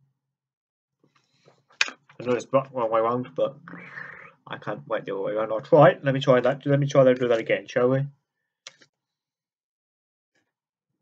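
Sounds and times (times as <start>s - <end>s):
man speaking: 2.2s - 3.7s, 4.4s - 8.1s.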